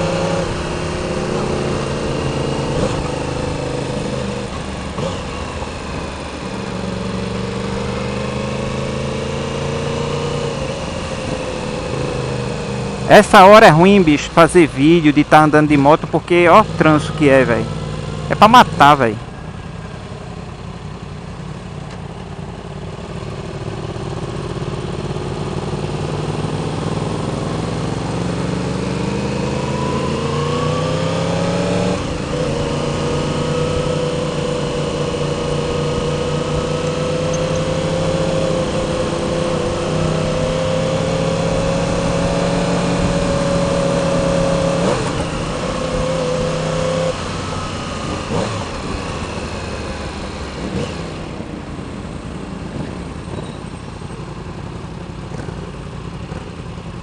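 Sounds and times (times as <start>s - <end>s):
motorcycle engine accelerating: 0.0s - 57.0s.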